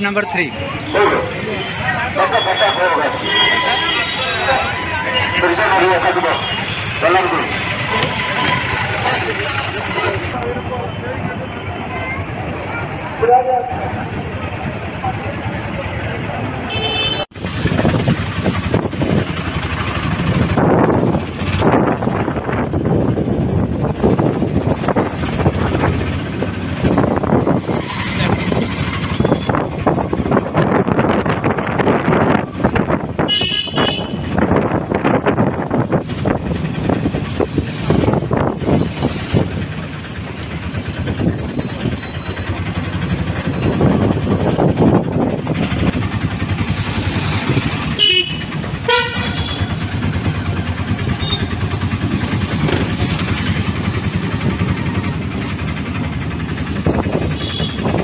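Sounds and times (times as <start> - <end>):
road and wind noise: 0.0 - 58.0
horn honking: 0.8 - 10.4, 16.7 - 17.3, 33.2 - 34.4, 47.8 - 50.1, 51.0 - 51.7, 57.2 - 58.0
small engine running: 36.0 - 58.0.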